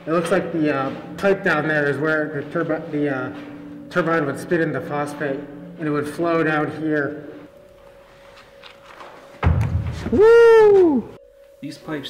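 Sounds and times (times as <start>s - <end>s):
deep thud: 9.4s - 10.2s.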